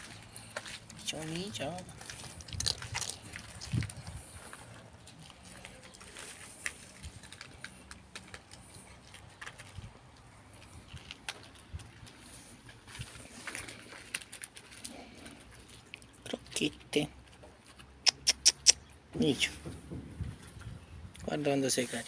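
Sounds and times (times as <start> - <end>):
cat crunching dry kibble: 0.0 - 18.8.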